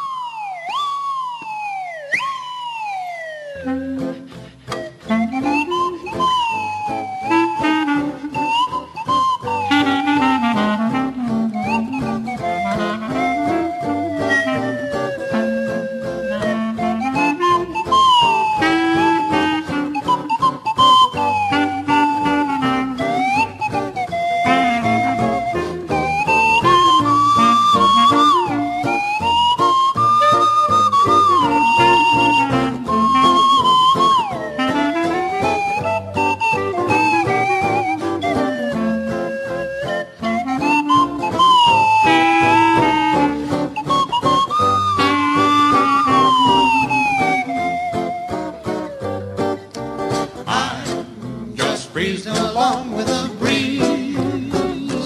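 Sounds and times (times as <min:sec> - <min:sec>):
slide whistle melody: 0:00.0 - 0:49.9, 0:51.6 - 0:55.0
string bass: 0:03.7 - 0:55.0
strummed acoustic guitar: 0:07.9 - 0:55.0.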